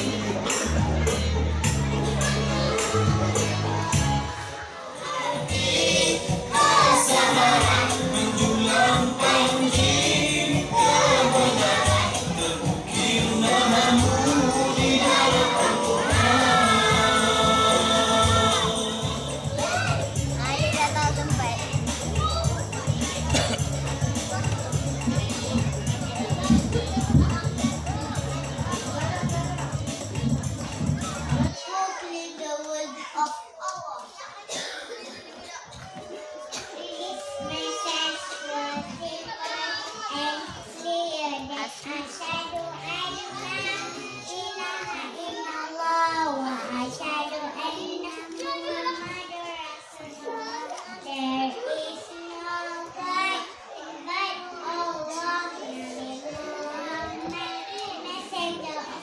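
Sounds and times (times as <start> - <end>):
background music: 0.0 - 31.5
young children calling and chattering: 0.0 - 59.0
children singing in unison: 2.4 - 21.0.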